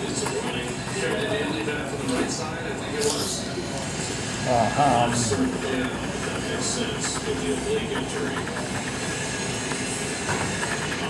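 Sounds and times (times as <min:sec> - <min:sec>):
key scratching lottery ticket: 0:00.0 - 0:04.0, 0:04.6 - 0:11.0.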